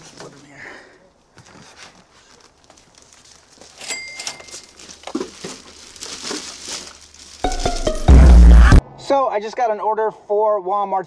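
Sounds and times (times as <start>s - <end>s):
plastic bags rustling: 1.4s - 8.1s
sharp clink: 3.8s - 4.6s.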